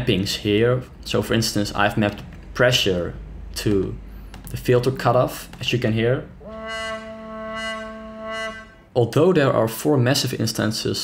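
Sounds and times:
brassy synth note: 6.4s - 8.9s.

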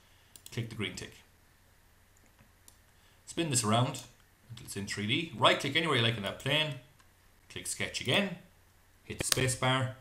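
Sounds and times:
computer mouse clicks: 0.3s - 0.6s.

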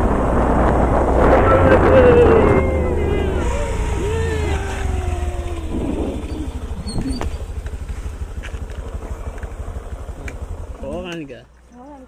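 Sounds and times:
wind on microphone: 0.0s - 7.6s
wavering falling tone: 1.2s - 7.5s.

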